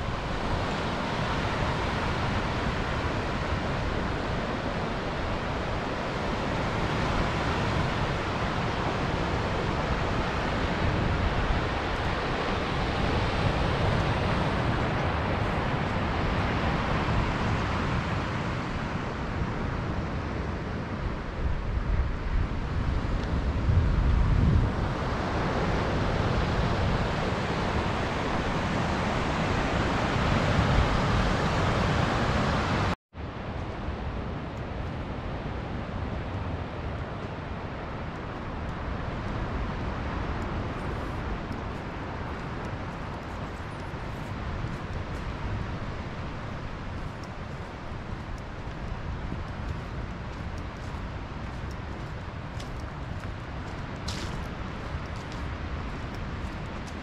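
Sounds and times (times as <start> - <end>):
small waves breaking on beach: 0.0 - 21.0, 21.9 - 33.0
wind on microphone: 0.0 - 57.0.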